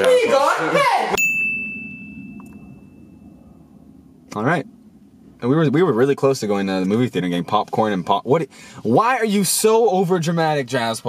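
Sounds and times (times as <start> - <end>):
bell-like ding: 1.2 - 3.9.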